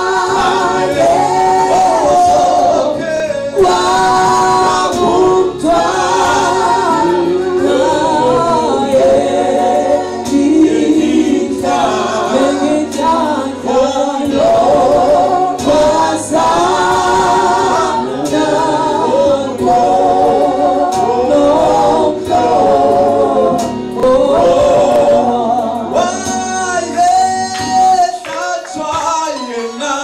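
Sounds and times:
man singing a hymn: 0.0s - 30.0s.

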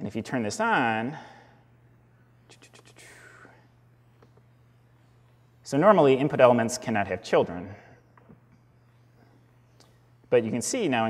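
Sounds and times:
low electrical hum: 0.0s - 11.0s
soft breathy hiss: 1.0s - 5.7s.

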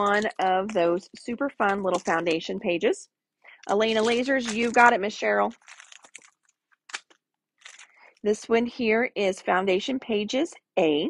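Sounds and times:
cellophane crinkling: 0.0s - 2.4s, 3.6s - 8.2s.

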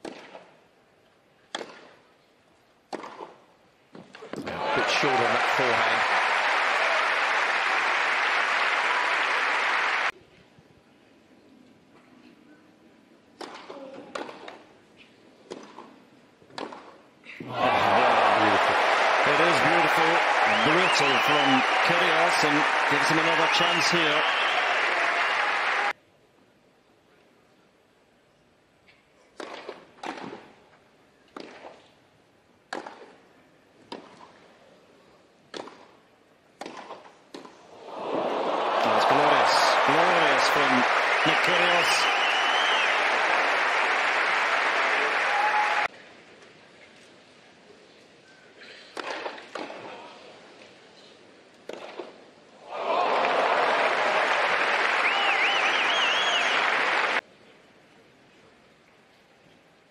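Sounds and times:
tennis ball struck by racquets: 0.0s - 0.4s, 1.5s - 1.9s, 2.9s - 3.4s, 16.5s - 17.0s, 29.4s - 30.4s, 31.4s - 31.7s, 32.7s - 33.1s, 35.5s - 35.9s, 36.6s - 37.5s, 49.0s - 49.8s, 51.7s - 52.1s
crowd applause with shouts: 4.4s - 10.1s, 17.4s - 26.0s, 37.8s - 45.9s, 52.7s - 57.2s.

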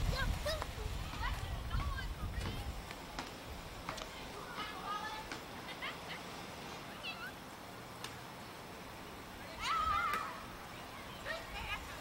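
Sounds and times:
young voices calling: 0.0s - 7.6s, 8.3s - 12.0s
child's high-pitched shout: 9.6s - 10.4s.

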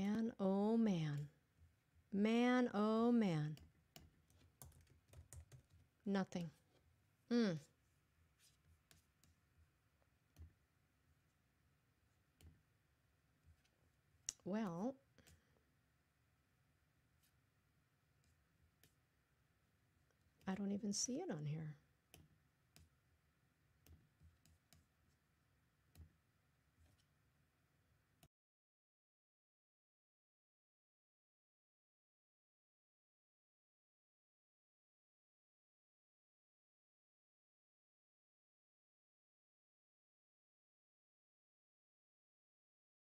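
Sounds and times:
typing on computer keyboard: 3.6s - 5.9s.

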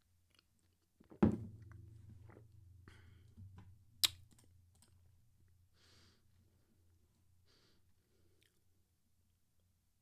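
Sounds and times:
low steady hum: 1.2s - 10.0s.

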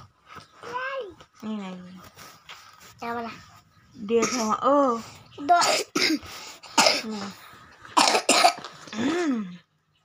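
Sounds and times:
person coughing harshly: 5.5s - 7.2s, 8.0s - 9.4s.

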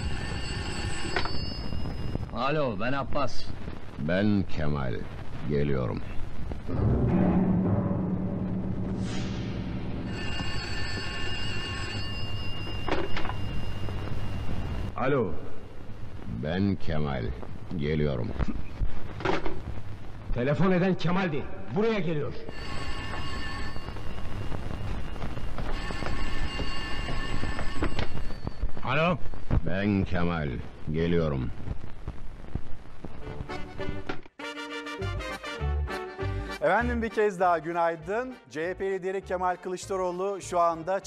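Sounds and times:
dense low rumble: 6.5s - 10.1s
dramatic soundtrack music: 6.7s - 10.1s.

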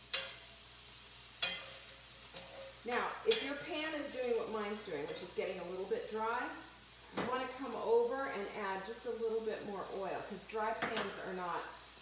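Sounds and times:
spoon scraping a pan: 0.0s - 5.6s
mushrooms sizzling in a skillet: 0.0s - 12.0s.

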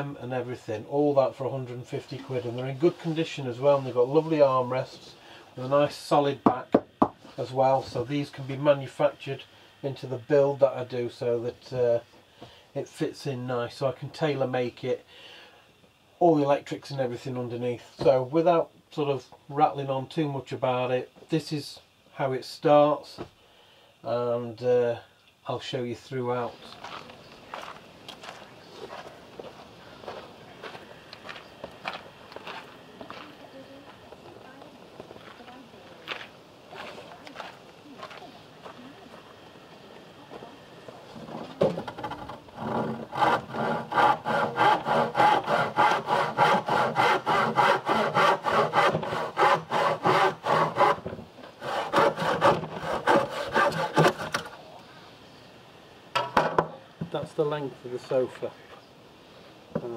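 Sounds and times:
handsaw cutting wood: 41.9s - 54.5s.

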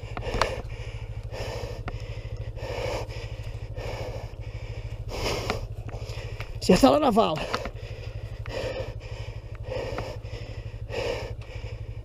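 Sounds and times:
dirt bike engine idling: 0.0s - 12.0s
person panting heavily: 0.0s - 12.0s.

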